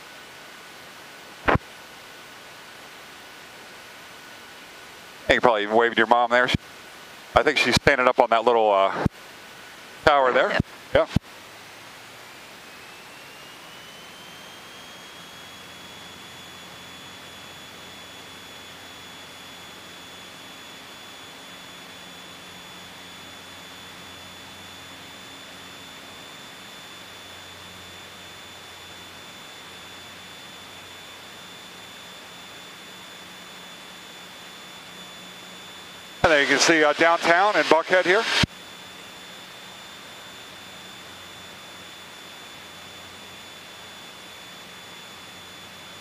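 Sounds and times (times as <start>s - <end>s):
aircraft engine and propeller: 0.0s - 46.0s
high whine rising in pitch: 10.0s - 46.0s.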